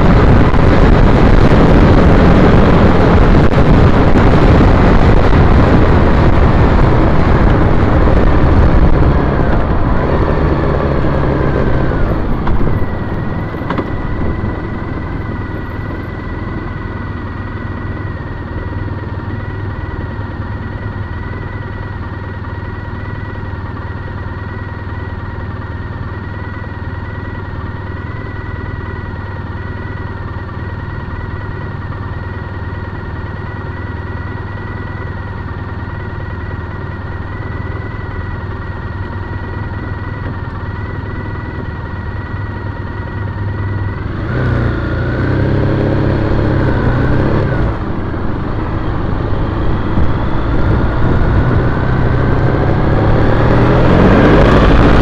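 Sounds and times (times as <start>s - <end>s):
motorcycle accelerating: 0.0s - 55.0s
motorcycle engine idling: 5.7s - 44.1s.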